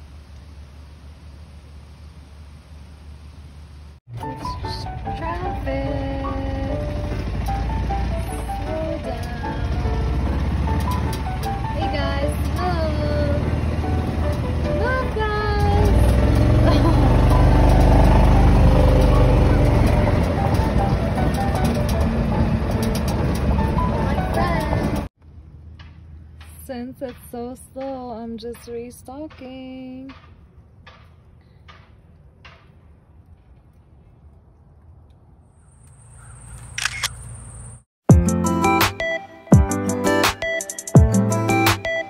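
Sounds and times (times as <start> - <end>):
background music: 4.1 - 25.1, 38.1 - 42.0.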